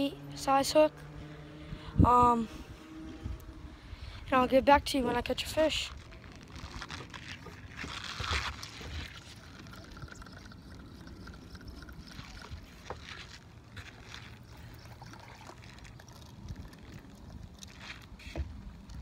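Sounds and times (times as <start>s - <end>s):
faint water sounds: 0.0s - 19.0s
wind on microphone: 1.6s - 6.0s
rustle: 15.3s - 18.4s.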